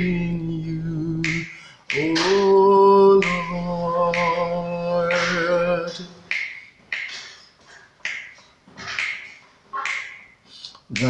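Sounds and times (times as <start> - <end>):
finger snaps: 1.2 - 2.5, 3.2 - 5.6, 6.3 - 8.4.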